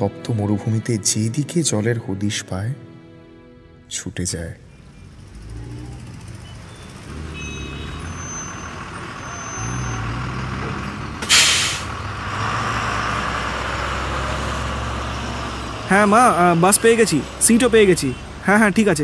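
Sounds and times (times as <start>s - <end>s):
bus engine rumbling: 3.9s - 19.0s
air brakes hissing: 11.2s - 12.0s.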